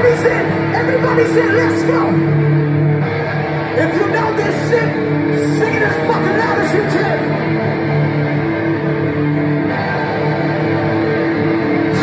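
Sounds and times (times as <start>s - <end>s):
distorted electric guitars and bass: 0.0s - 12.0s.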